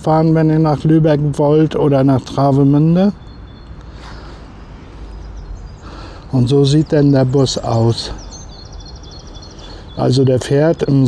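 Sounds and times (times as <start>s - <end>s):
outdoor background noise: 0.0s - 11.0s
songbird trilling: 0.1s - 11.0s.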